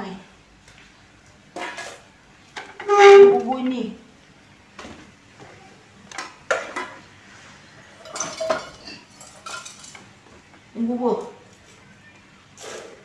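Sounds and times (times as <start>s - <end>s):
bowls and utensils clinking: 7.9s - 10.1s.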